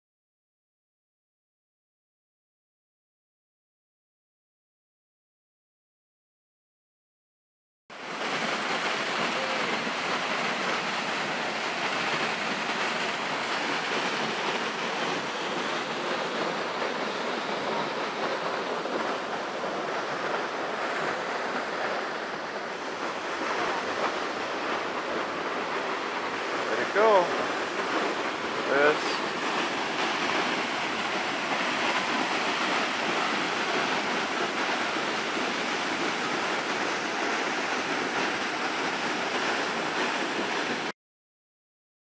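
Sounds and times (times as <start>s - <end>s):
waterfall and creek rushing: 8.0s - 40.9s.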